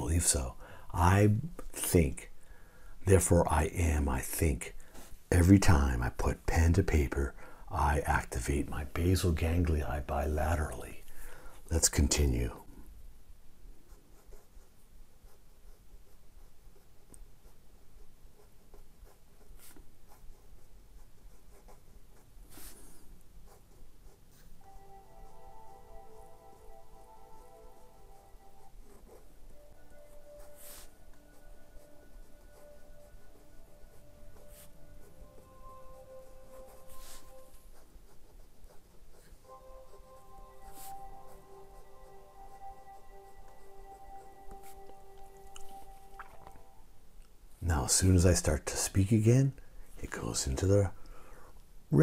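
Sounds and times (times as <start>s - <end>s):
pen scratching on paper: 13.9s - 45.9s
steady musical tones: 24.6s - 37.7s, 39.4s - 47.2s.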